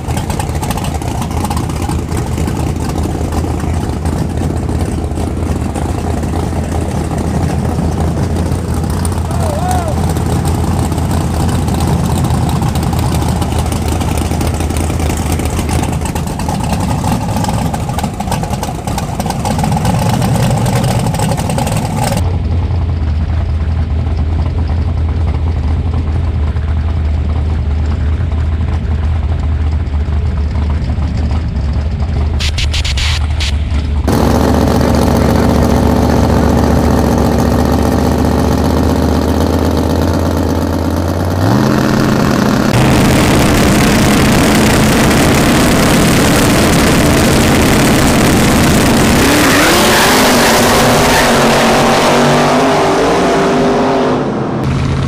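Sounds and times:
car engines idling loudly: 0.0s - 55.0s
engine revving: 32.4s - 55.0s.

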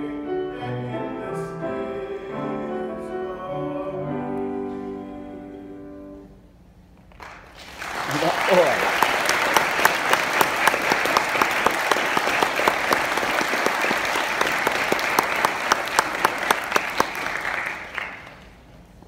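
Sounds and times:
audience applauding: 7.1s - 18.7s.

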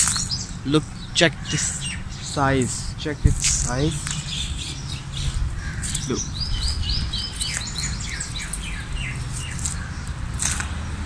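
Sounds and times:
low rumble: 0.0s - 10.4s
bird singing whistled notes: 4.0s - 9.6s.

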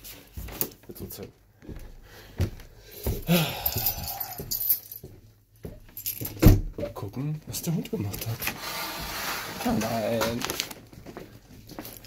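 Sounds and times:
small metal pieces jangling: 3.6s - 5.1s.

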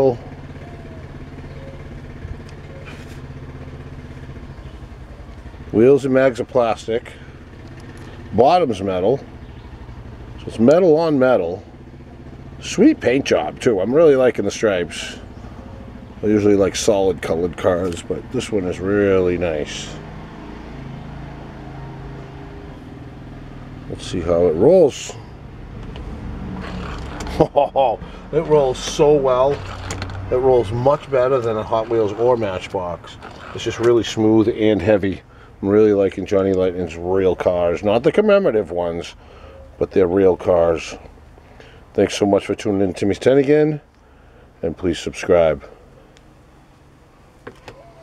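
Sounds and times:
low machine hum: 22.6s - 38.0s.

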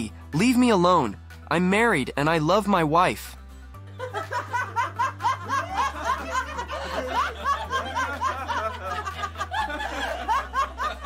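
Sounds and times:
group of people laughing: 3.9s - 11.0s.

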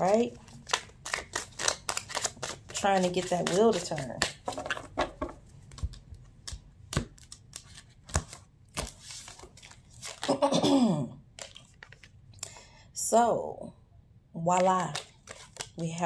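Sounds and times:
cards being shuffled: 0.0s - 10.3s, 11.4s - 12.2s, 14.6s - 16.0s.

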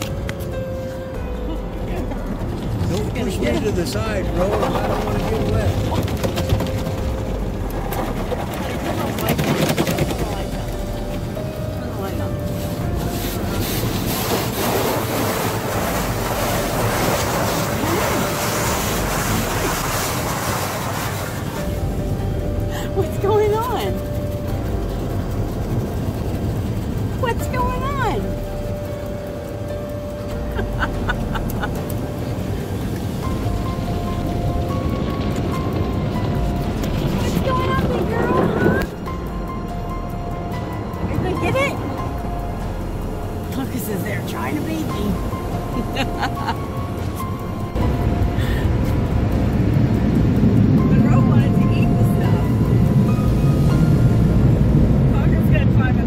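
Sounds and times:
water spray hissing on truck: 12.0s - 23.8s.

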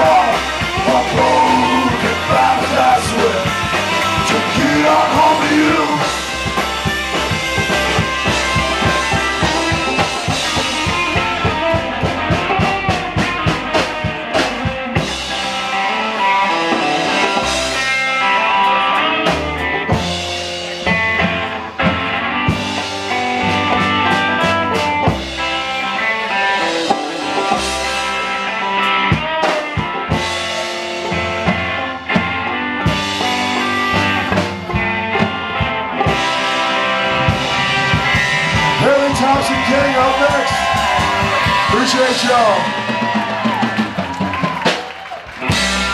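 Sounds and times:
steady drum beat: 0.0s - 26.2s, 26.8s - 45.9s
live band playing: 0.0s - 45.9s.

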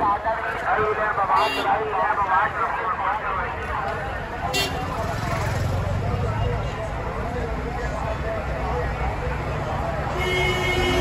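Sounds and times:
people talking: 0.0s - 10.2s
passing traffic: 0.0s - 11.0s.

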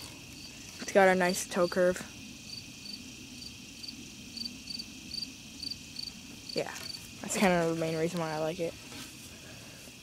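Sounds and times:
insects chirping: 0.0s - 10.0s
steady high-pitched hiss: 0.0s - 10.0s.

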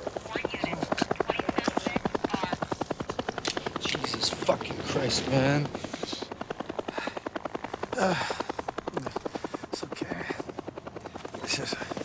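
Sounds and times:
helicopter rotor beating: 0.0s - 12.0s.

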